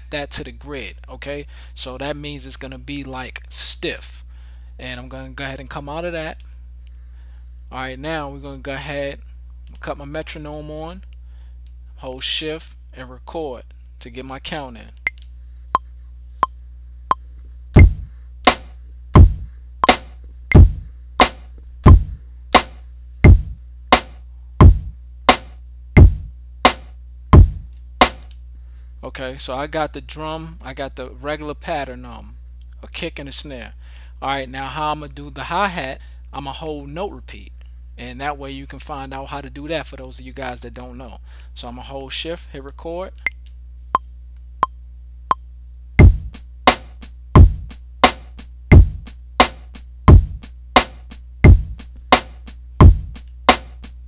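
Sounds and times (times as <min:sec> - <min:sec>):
low steady hum: 0:00.0 - 0:54.0
kick drum: 0:17.8 - 0:27.7, 0:46.0 - 0:46.4, 0:47.4 - 0:47.7, 0:48.7 - 0:49.1, 0:50.1 - 0:50.4, 0:51.5 - 0:51.8, 0:52.8 - 0:53.2
snare drum: 0:17.8 - 0:28.3, 0:46.0 - 0:53.9.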